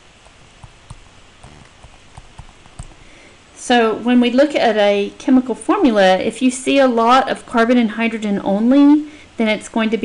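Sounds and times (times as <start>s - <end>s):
stylus tapping on tablet screen: 0.2s - 3.0s.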